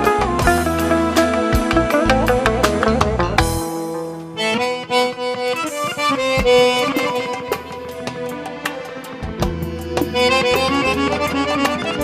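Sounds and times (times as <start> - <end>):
accordion playing ornamented melody: 0.0 - 12.0
light drum strikes: 0.0 - 12.0.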